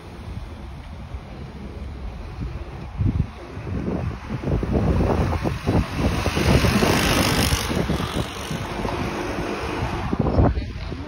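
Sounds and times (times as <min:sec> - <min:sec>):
street traffic: 0:00.0 - 0:11.0
wind buffeting microphone: 0:00.0 - 0:11.0
vehicle passing: 0:03.1 - 0:11.0.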